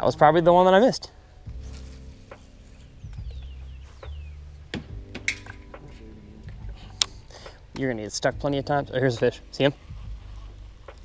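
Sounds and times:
fishing reel whirring: 9.3s - 11.0s.

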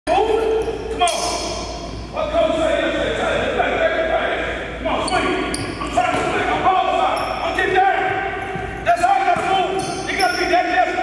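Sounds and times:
voices echoing in hall: 0.1s - 11.0s.

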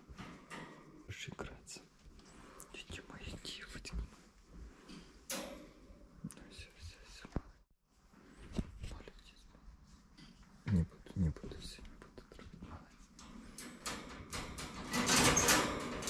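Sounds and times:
person whispering: 1.1s - 4.2s, 6.2s - 7.6s, 8.5s - 9.9s, 10.6s - 13.2s.

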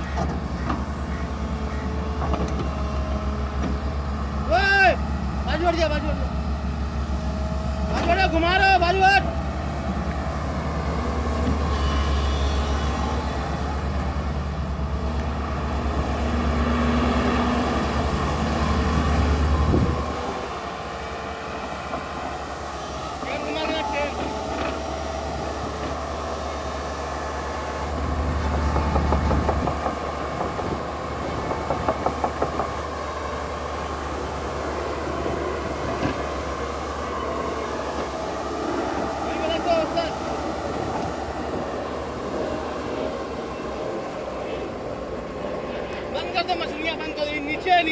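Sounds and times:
excavator diesel engine: 0.0s - 47.9s.

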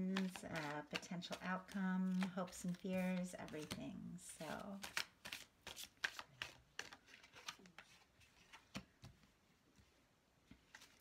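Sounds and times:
person speaking: 0.0s - 5.0s
cards being shuffled: 0.0s - 9.9s, 10.5s - 11.0s.

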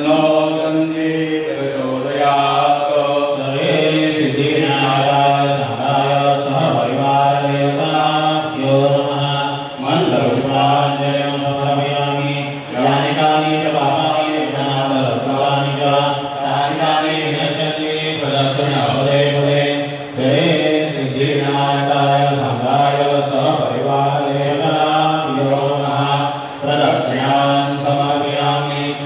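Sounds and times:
man chanting: 0.0s - 29.0s.

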